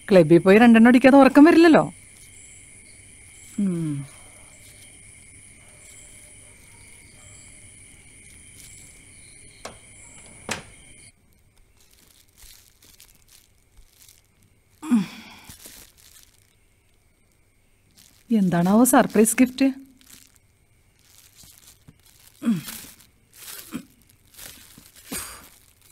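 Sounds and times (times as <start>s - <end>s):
crickets chirping: 0.0s - 25.9s
woman sighing: 3.6s - 4.2s, 14.8s - 15.5s
wooden door shutting: 9.5s - 11.1s
foil wrap rustling: 11.5s - 25.9s.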